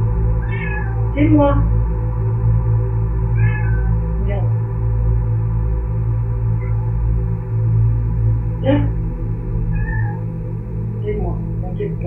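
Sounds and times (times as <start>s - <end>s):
steady low drone: 0.0s - 12.0s
cat meowing: 0.4s - 1.0s, 3.4s - 4.0s, 9.7s - 10.2s.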